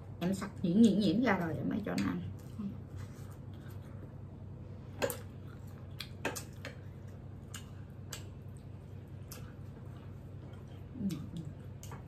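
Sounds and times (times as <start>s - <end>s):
soft eating sounds: 0.0s - 12.0s
steady low hum: 0.0s - 12.0s.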